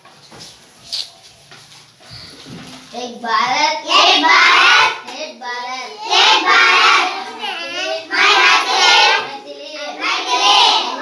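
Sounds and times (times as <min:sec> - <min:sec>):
faint children's voices murmuring: 0:04.5 - 0:11.0.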